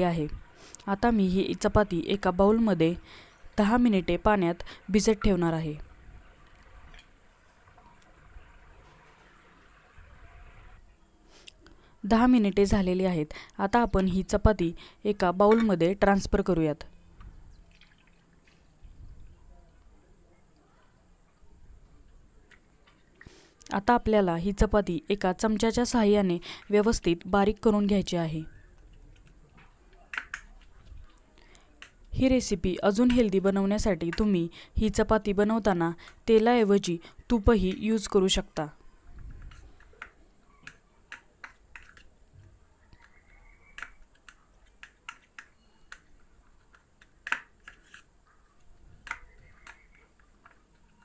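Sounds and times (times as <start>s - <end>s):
water trickling and dripping: 17.5s - 19.8s.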